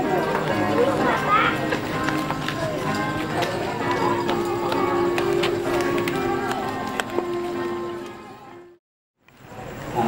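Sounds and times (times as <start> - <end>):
group singing a hymn: 2.9 - 8.4.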